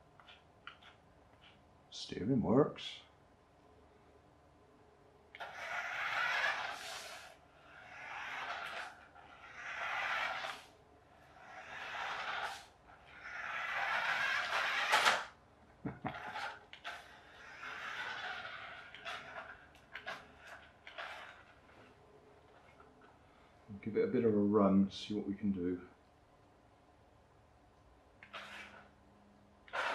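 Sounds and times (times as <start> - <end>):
toy car electric motor whirring: 5.4 - 22.0, 28.2 - 28.9, 29.6 - 29.9.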